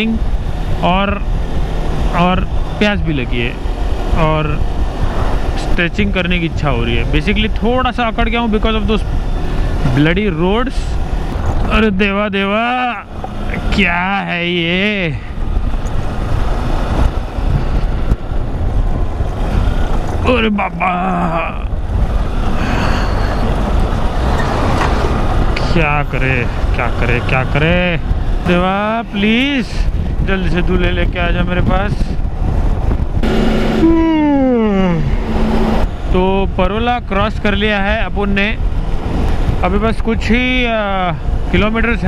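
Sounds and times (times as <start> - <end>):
wind on microphone: 0.0 - 12.1, 14.7 - 42.0
motorcycle engine: 0.0 - 37.8
tyres on rough road: 0.0 - 42.0
tone falling in pitch: 33.2 - 35.8
loud band of noise: 33.2 - 35.9.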